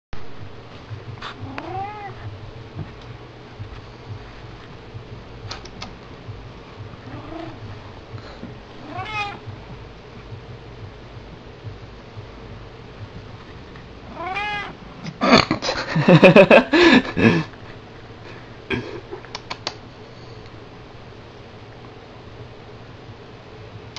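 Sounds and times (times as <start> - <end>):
cat meowing: 1.4 - 2.2, 8.8 - 9.4, 14.1 - 14.8
click: 5.5 - 5.9, 19.3 - 19.8
person laughing: 15.1 - 17.6, 18.7 - 19.3.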